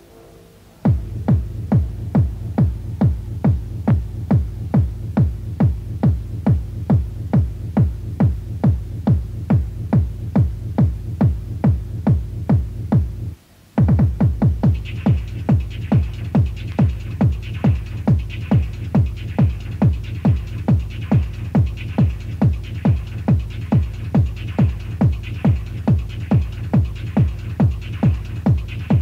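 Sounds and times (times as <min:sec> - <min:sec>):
electronic dance music: 0:00.8 - 0:29.0
deep bass drone: 0:00.9 - 0:13.4
pounding kick drum: 0:00.9 - 0:29.0.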